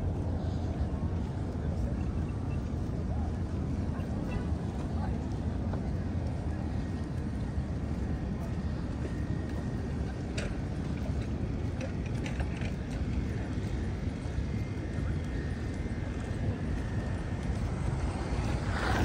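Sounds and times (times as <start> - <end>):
low street rumble: 0.0 - 19.0.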